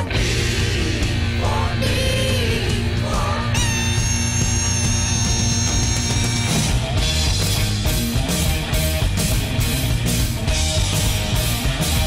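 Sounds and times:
hard rock music: 0.0s - 12.0s
distorted electric guitar held note: 3.5s - 7.2s.

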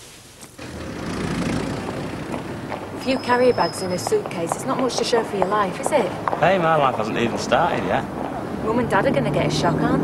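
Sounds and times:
car driving on cobblestones: 0.6s - 10.0s.

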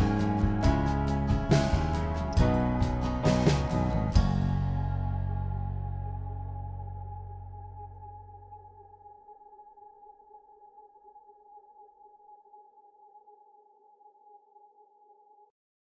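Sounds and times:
music held chord: 0.0s - 9.1s.

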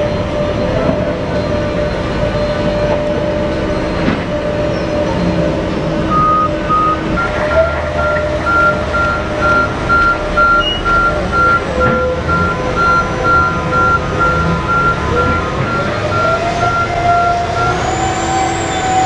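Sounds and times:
diesel engine drone: 0.0s - 19.0s
truck reversing alarm beeping: 0.0s - 19.0s.

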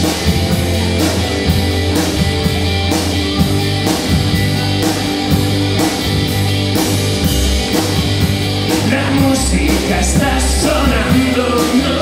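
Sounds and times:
distorted electric guitar: 0.0s - 12.0s
drum kit with cymbal hits: 0.0s - 12.0s
electric bass: 0.0s - 12.0s.

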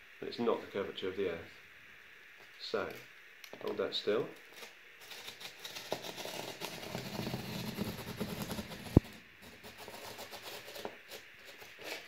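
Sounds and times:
knife slicing cardboard: 5.0s - 12.0s.

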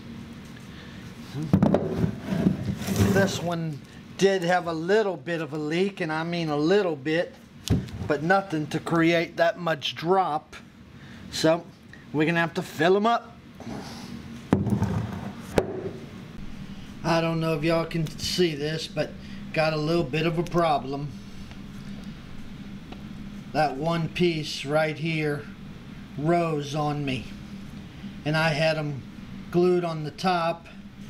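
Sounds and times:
wooden mold knocking on workbench: 14.6s - 16.0s.

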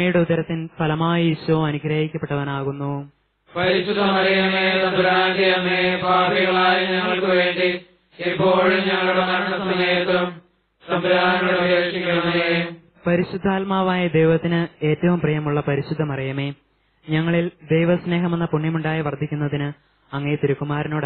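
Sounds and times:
prayer chanted: 3.5s - 12.9s.

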